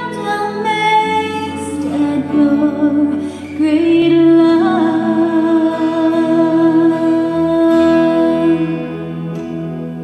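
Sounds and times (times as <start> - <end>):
live worship band music: 0.0 - 10.0.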